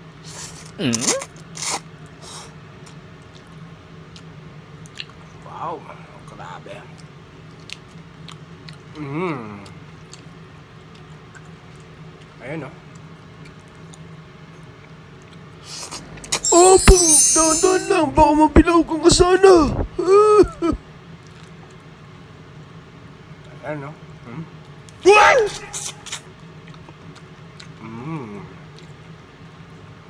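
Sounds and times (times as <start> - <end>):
quiet chewing with wet clicks: 2.8 - 5.4, 6.9 - 15.6, 21.2 - 22.2, 26.1 - 29.9
steady low hum: 17.8 - 20.9
person humming: 19.7 - 20.8.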